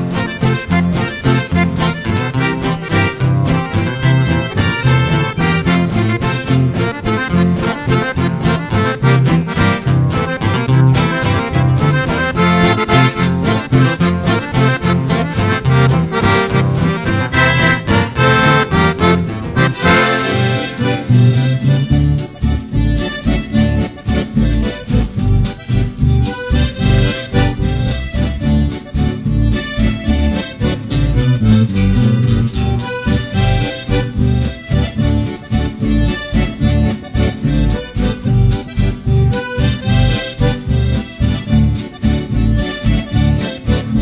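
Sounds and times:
accordion waltz: 0:00.0 - 0:44.0
guitar accompaniment: 0:00.0 - 0:44.0.

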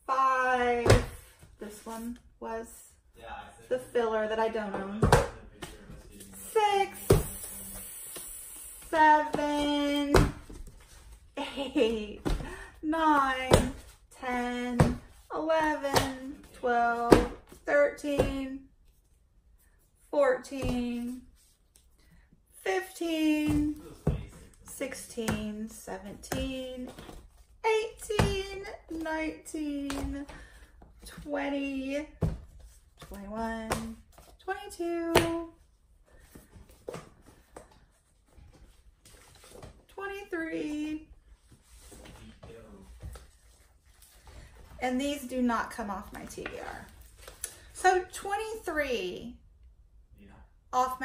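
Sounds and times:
woman counting aloud: 0:08.9 - 0:10.3.

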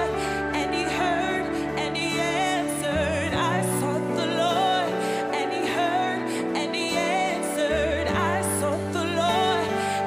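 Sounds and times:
woman singing worship song: 0:00.0 - 0:10.0.

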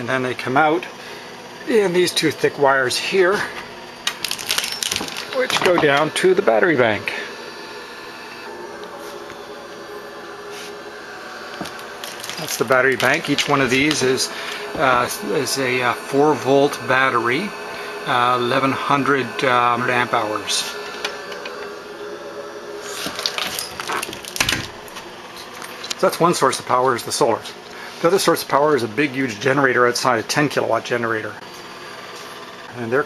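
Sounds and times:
steady electrical hum: 0:00.0 - 0:33.0.

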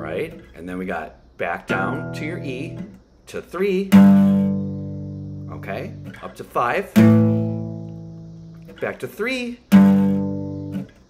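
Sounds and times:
acoustic guitar chord strum: 0:01.7 - 0:03.0, 0:03.8 - 0:09.0, 0:09.6 - 0:11.0.

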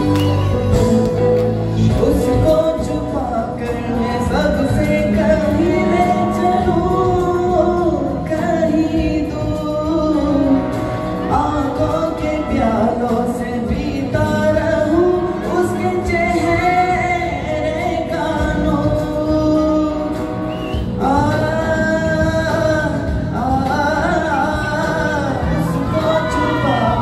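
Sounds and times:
backing music: 0:00.0 - 0:27.0
man singing with vibrato: 0:00.0 - 0:27.0.

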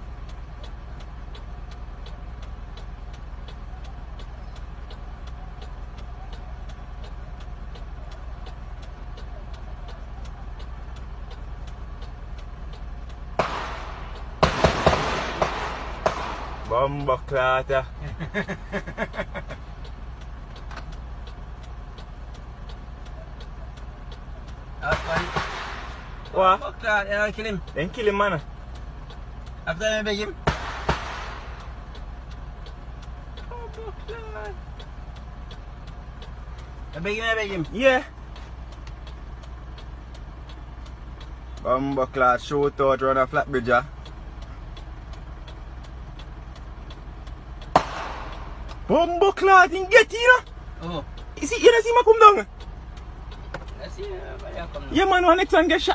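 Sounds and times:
light regular ticks: 0:00.0 - 0:14.4, 0:15.7 - 0:55.9
engine running with low rumble: 0:00.0 - 0:55.9.

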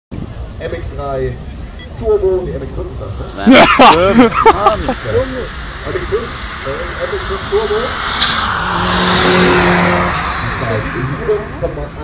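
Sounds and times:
car driving past: 0:03.0 - 0:12.0.

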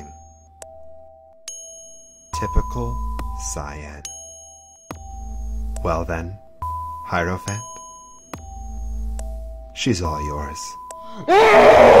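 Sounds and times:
bell-like chime: 0:01.5 - 0:05.4, 0:06.8 - 0:09.0.

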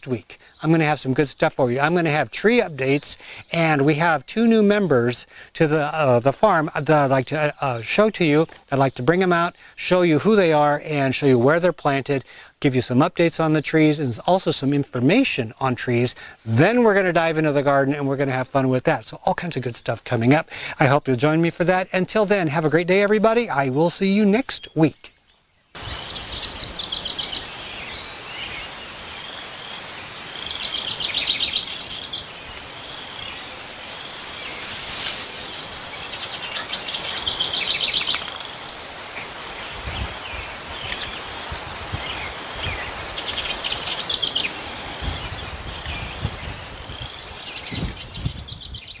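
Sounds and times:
songbirds singing: 0:00.0 - 0:49.0
steady outdoor hiss: 0:00.0 - 0:49.0.

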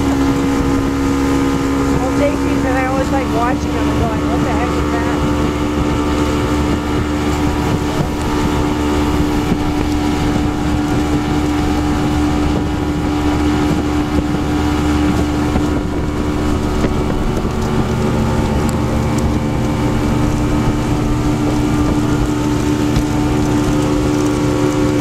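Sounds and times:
outboard motor droning: 0:00.0 - 0:25.0
rushing water: 0:00.0 - 0:25.0
wind buffeting microphone: 0:00.0 - 0:25.0.

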